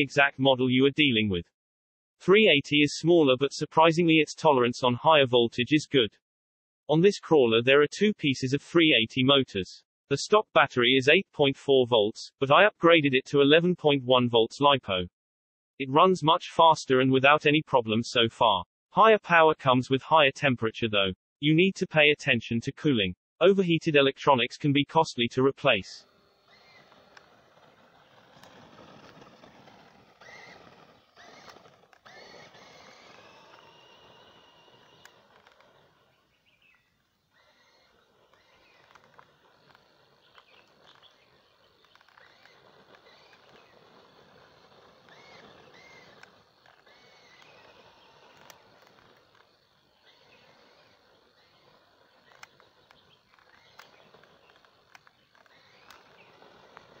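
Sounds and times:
outdoor background noise: 0:25.5 - 0:57.0
electric motor whine: 0:26.0 - 0:36.5, 0:37.2 - 0:57.0.

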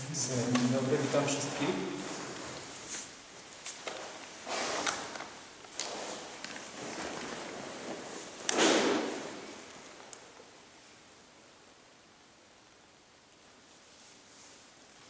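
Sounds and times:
rustling bursts: 0:00.9 - 0:10.1.

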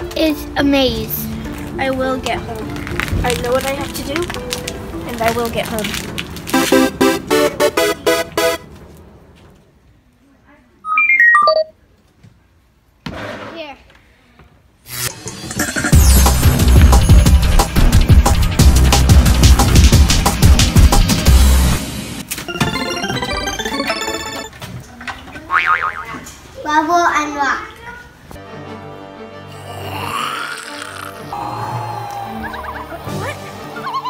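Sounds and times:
electronic beeps stepping down: 0:10.9 - 0:11.7.

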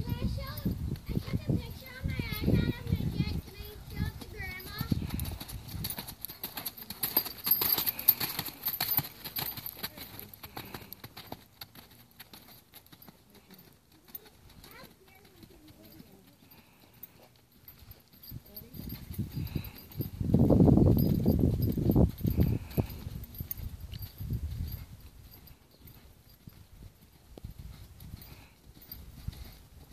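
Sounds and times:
horse hoofbeats on sand: 0:00.0 - 0:29.9.

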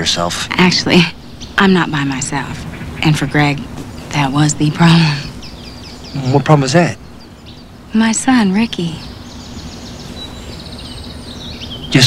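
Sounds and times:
small birds chirping: 0:00.0 - 0:12.0
steady background noise: 0:00.0 - 0:12.0.

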